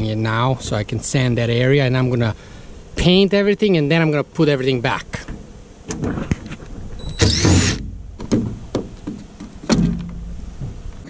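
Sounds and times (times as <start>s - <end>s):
cordless driver motor whining: 7.0s - 7.8s
thump: 7.3s - 10.8s.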